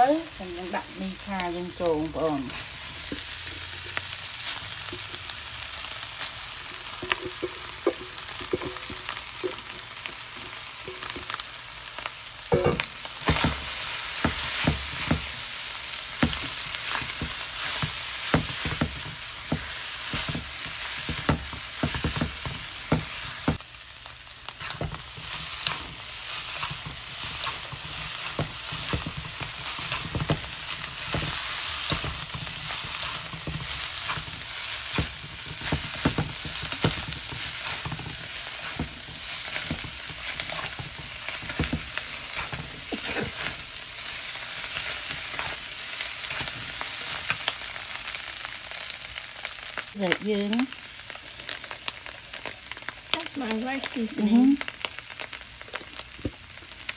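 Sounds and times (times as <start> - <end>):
noodles and meat sizzling in a pan: 0.0 - 56.9
utensil scraping against a pan: 24.6 - 43.7.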